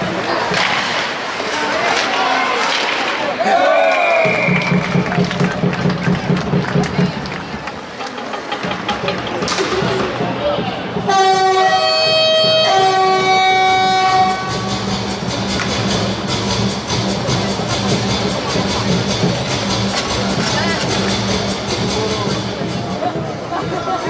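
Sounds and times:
goal horn blasting: 0:11.0 - 0:14.9.

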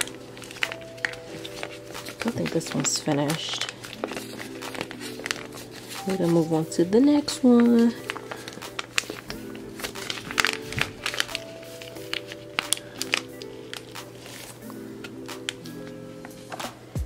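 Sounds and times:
foil pouch crinkling: 0:00.0 - 0:16.4
background music with held chords: 0:00.0 - 0:17.0.

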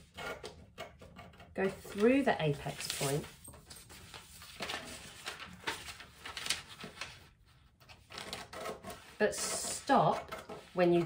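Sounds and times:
paper rustling: 0:01.6 - 0:11.0
scissors snipping paper: 0:07.8 - 0:11.0.

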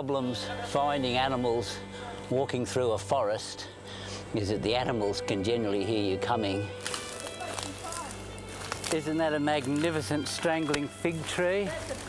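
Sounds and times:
low music bed: 0:00.0 - 0:12.0
footsteps crunching through undergrowth: 0:06.2 - 0:12.0.

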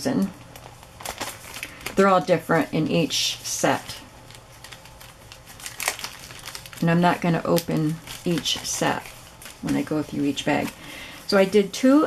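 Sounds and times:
plastic bag crinkling: 0:00.3 - 0:03.0, 0:03.6 - 0:12.0.

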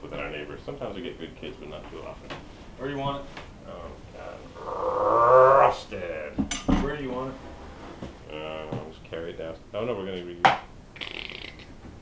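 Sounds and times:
long drawn-out voice: 0:04.2 - 0:05.8.

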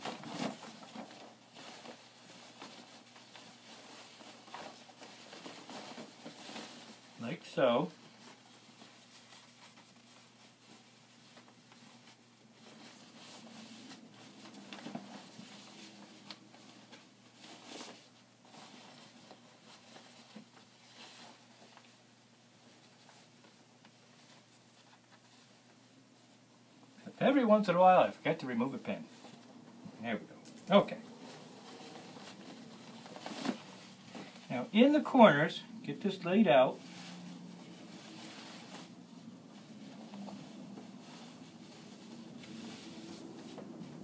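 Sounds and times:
fabric rustling: 0:00.0 - 0:27.7, 0:28.5 - 0:44.0
fabric swish: 0:36.7 - 0:44.0.

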